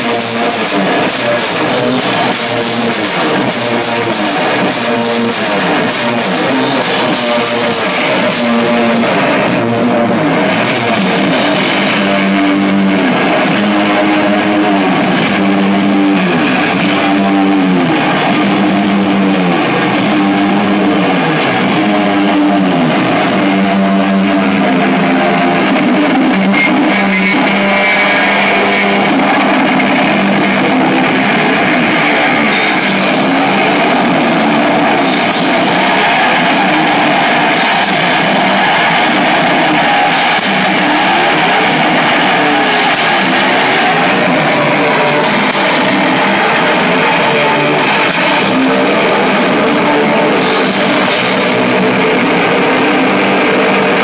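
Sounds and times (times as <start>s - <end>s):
rock music with electric guitar: 0.0s - 54.0s.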